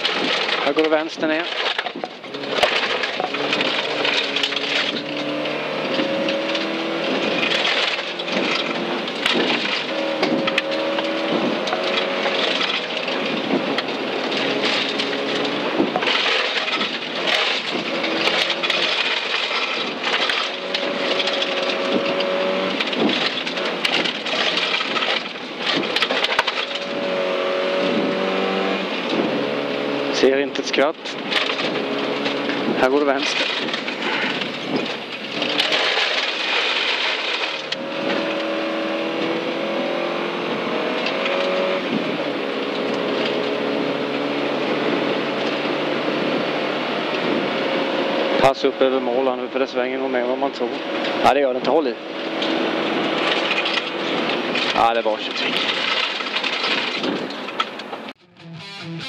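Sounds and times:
gravel striking car: 0.0s - 58.2s
car engine revving: 0.0s - 59.0s
road noise: 0.0s - 59.0s.

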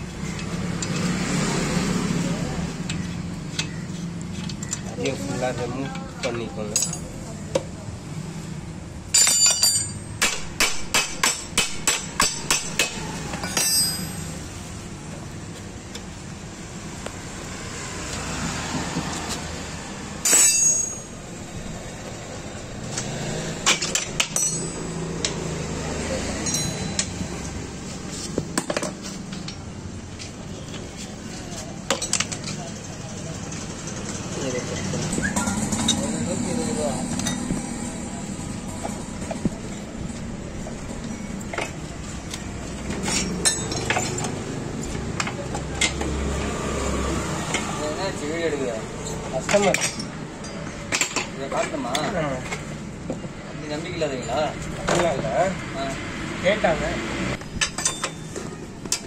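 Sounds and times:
steady background noise: 0.0s - 59.0s
metal tools clinking: 5.9s - 7.2s, 9.1s - 10.2s, 12.2s - 14.5s, 20.2s - 21.2s, 23.6s - 25.4s, 26.4s - 27.6s, 41.0s - 44.4s, 49.0s - 52.6s, 57.5s - 59.0s
metallic clank with ring: 9.1s - 10.2s, 13.4s - 14.4s, 20.2s - 21.2s, 23.9s - 25.0s, 26.4s - 27.2s, 57.6s - 58.4s.

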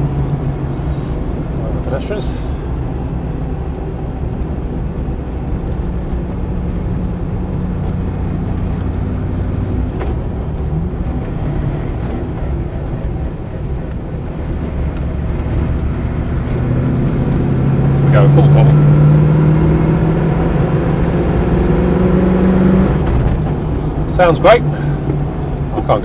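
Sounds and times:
engine droning from inside cab: 0.0s - 26.0s
road noise: 0.0s - 26.0s.

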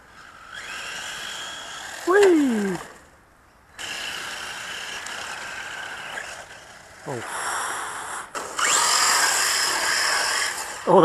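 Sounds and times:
electric motor whining: 0.0s - 3.1s, 3.8s - 11.0s.

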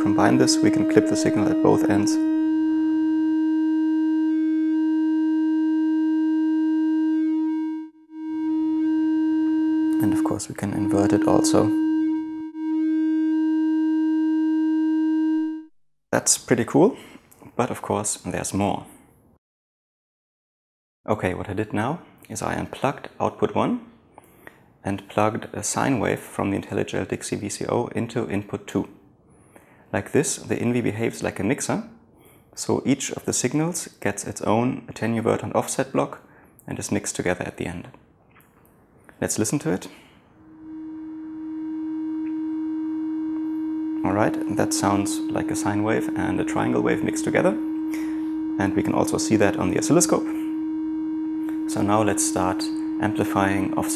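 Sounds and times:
buzzy synthesizer tone: 0.0s - 15.7s, 40.3s - 53.9s.

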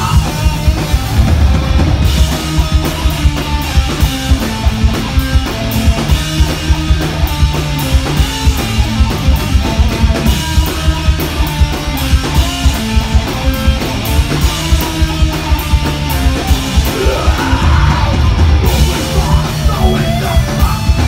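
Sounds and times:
bass guitar: 0.0s - 21.0s
drum kit beat: 0.0s - 21.0s
electric guitars: 0.0s - 21.0s.

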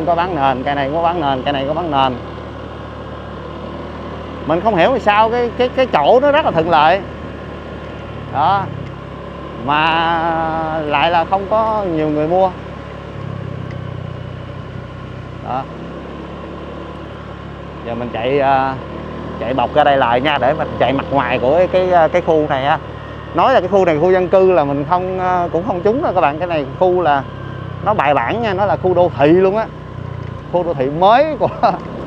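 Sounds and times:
motorbike engine running: 0.0s - 32.0s.

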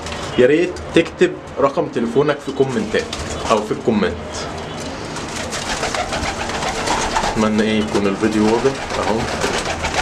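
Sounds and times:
pigeons cooing: 4.2s - 10.0s.

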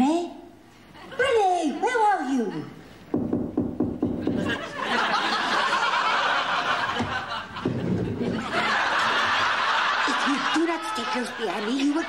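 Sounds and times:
studio audience laughing: 4.2s - 12.0s.

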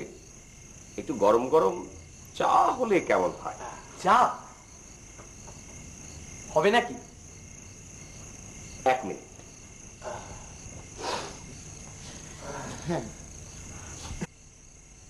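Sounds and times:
crickets chirping: 0.0s - 15.0s.

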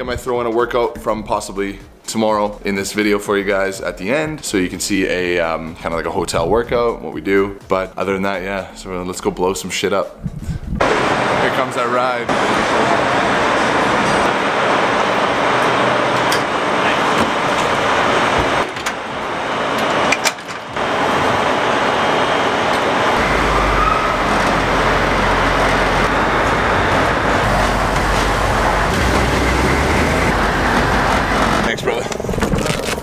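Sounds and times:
diesel engine running: 10.8s - 33.0s
road noise: 10.8s - 33.0s.

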